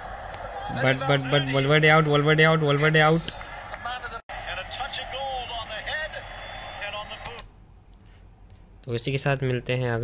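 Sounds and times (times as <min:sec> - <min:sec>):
crowd noise: 0:00.0 - 0:07.5.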